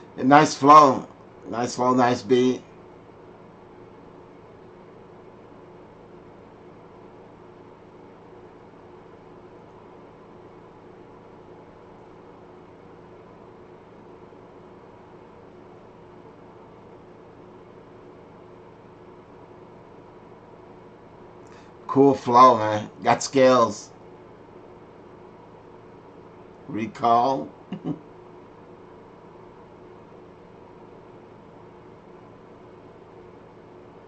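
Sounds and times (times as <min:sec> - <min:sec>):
electrical hum: 0:00.0 - 0:34.0.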